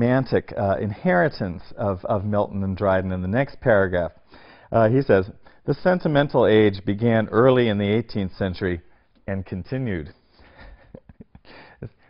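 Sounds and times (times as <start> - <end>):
faint breath sounds: 4.2 - 4.8, 10.2 - 12.0.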